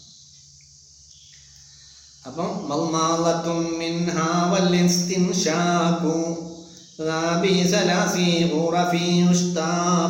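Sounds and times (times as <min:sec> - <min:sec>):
high-pitched chirring hiss: 0:00.0 - 0:10.0
low steady hum: 0:00.0 - 0:10.0.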